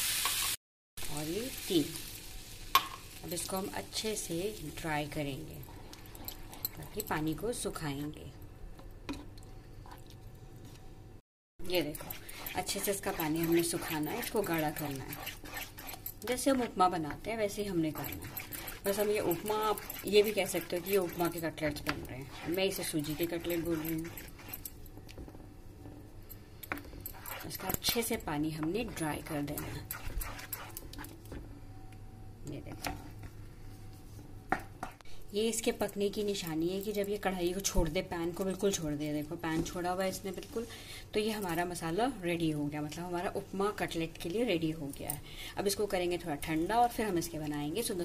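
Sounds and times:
wooden spoon stirring in a pan: 11.7 - 16.9, 17.6 - 25.4, 26.9 - 31.1
mixture simmering: 11.7 - 25.5.

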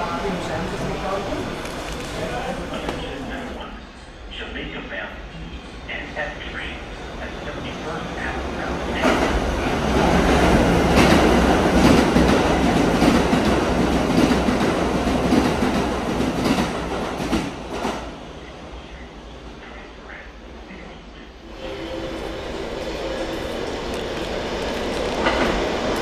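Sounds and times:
subway train wheels clacking: 0.0 - 26.0.

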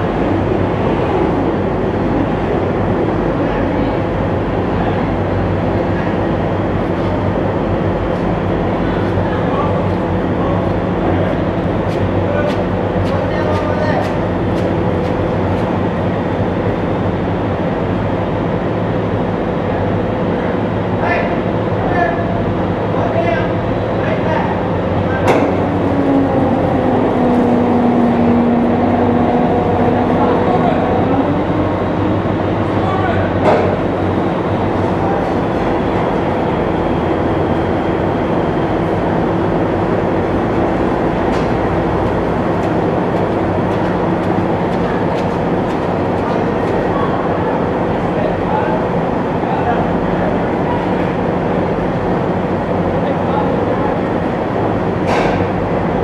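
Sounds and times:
diesel engine running: 0.0 - 56.0
tracks rattling and whining: 24.6 - 53.0.

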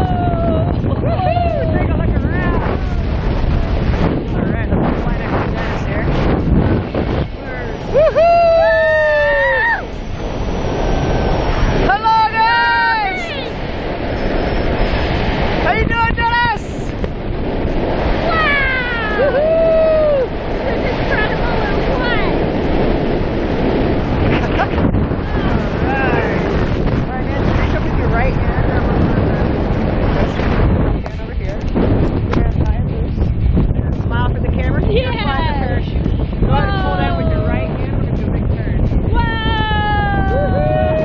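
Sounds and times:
person whooping: 0.0 - 1.7, 7.9 - 9.9, 18.3 - 20.3, 39.2 - 41.0
wind rush: 0.0 - 41.0.

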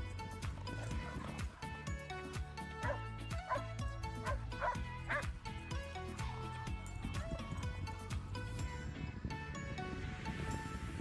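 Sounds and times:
background music: 0.0 - 11.0
dog barking: 2.8 - 5.2.

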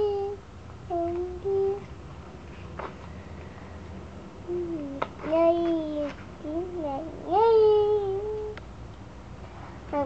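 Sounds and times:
young child humming: 0.0 - 1.9, 4.5 - 8.6.

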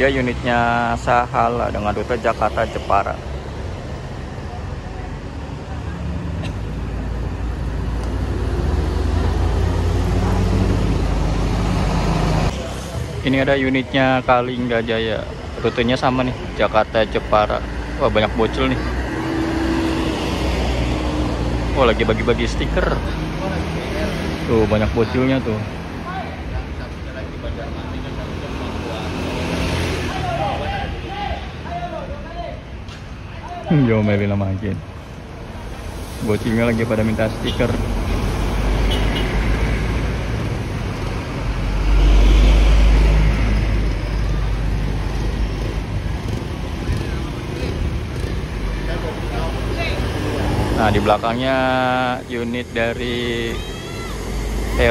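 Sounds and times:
bus diesel engine passing by: 0.0 - 31.8, 34.9 - 54.9.

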